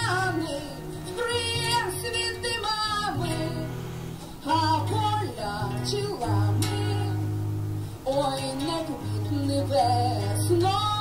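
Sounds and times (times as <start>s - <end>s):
woman singing long notes: 0.0s - 7.4s, 8.0s - 11.0s
acoustic guitar: 0.0s - 11.0s.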